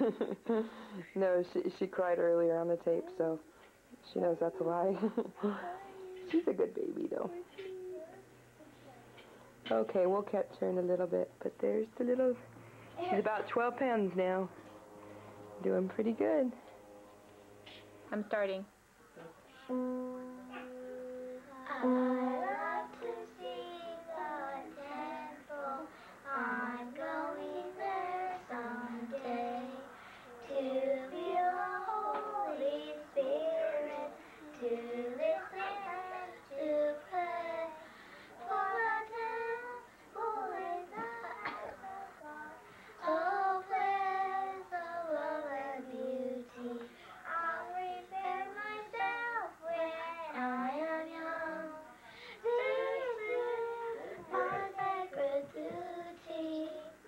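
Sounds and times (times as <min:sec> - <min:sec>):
girls singing together: 0:20.5 - 0:57.0.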